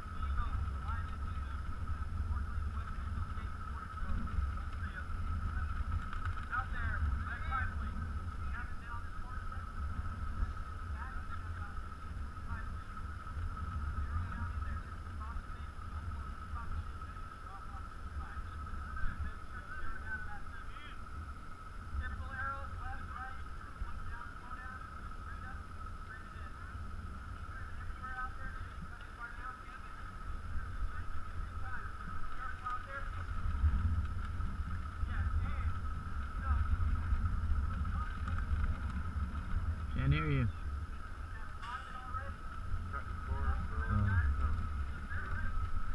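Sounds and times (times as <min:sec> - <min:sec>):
distant voices: 0:00.0 - 0:45.9
high-pitched hum: 0:00.0 - 0:45.9
wind buffeting microphone: 0:00.0 - 0:45.9.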